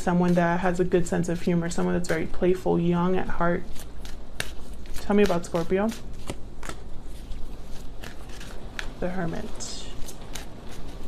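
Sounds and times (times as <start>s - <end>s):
cards being shuffled: 3.6s - 11.0s
cards snapping: 3.8s - 6.9s.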